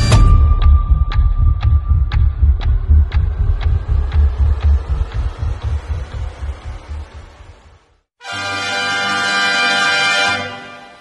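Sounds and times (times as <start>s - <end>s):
sharp ticking: 0.1s - 7.4s
low pulsing drone: 0.1s - 8.0s.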